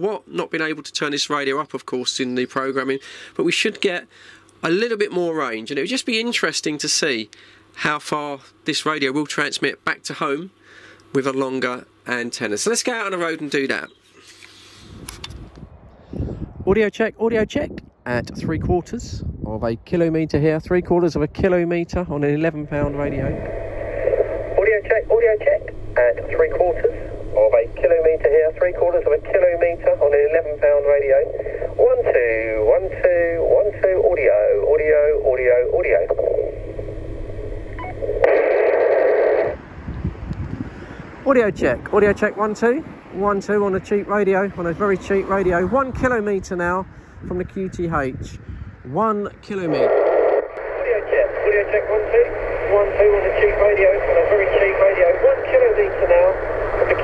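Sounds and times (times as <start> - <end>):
faint steady hum: 0.0 - 18.2, 18.8 - 57.0
microphone handling clicks: 14.2 - 15.7
wind rumbling on microphone: 14.8 - 24.6, 35.9 - 51.5
voice over radio speaker: 20.4 - 36.6, 38.3 - 39.6, 41.3 - 57.0
low hum: 20.7 - 40.4, 49.7 - 57.0
burst of radio hiss: 22.8 - 36.6, 38.0 - 39.6, 49.7 - 57.0.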